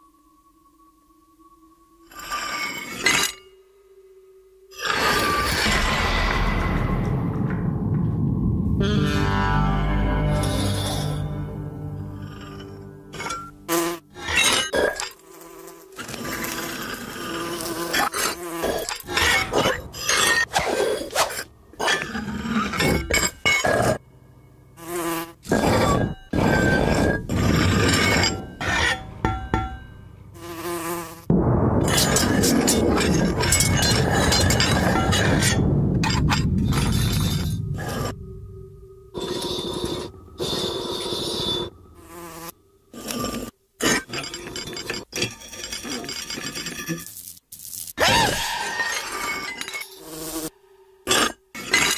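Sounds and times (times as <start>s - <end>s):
loud burst with clattering: 5.4s - 9.9s, 31.3s - 38.2s
insect buzzing: 13.6s - 19.3s, 24.8s - 27.5s, 30.3s - 31.3s, 38.9s - 43.6s, 46.9s - 48.0s.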